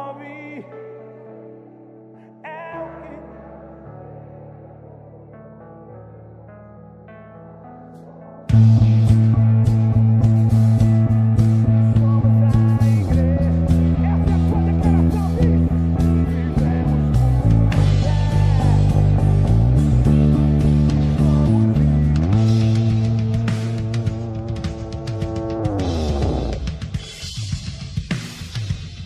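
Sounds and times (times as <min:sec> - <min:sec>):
electric bass: 0:08.5 - 0:27.1
band with drums: 0:22.2 - 0:29.0.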